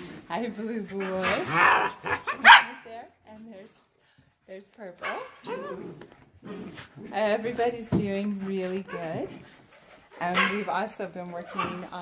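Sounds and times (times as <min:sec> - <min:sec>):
puppies whining and yipping: 0:08.2 - 0:12.0.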